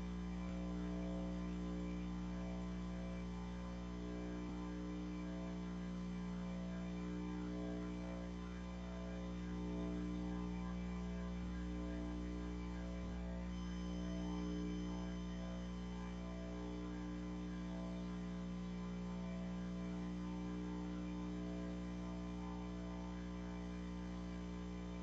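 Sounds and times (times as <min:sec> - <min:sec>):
electrical mains hum: 0:00.0 - 0:25.0.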